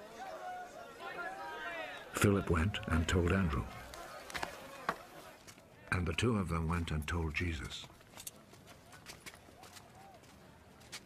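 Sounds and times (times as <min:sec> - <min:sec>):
footsteps on stone paving: 0:03.7 - 0:05.6, 0:07.6 - 0:11.0.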